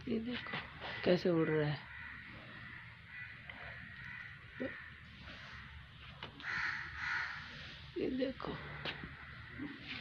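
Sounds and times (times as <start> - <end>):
crows cawing: 0.4 - 7.8, 8.6 - 10.0.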